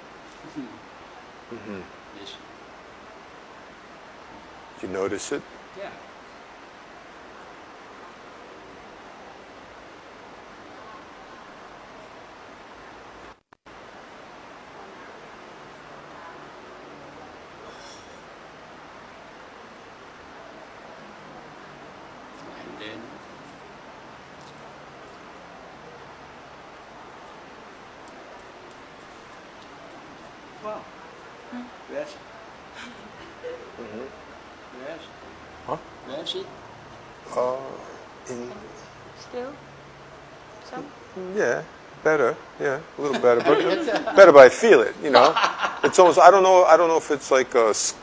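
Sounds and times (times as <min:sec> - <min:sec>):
steady background hiss: 0:00.0 - 0:48.0.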